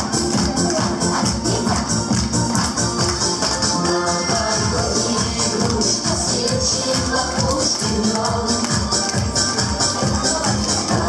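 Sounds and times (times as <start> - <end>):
dance music with steady beat: 0.0 - 11.0.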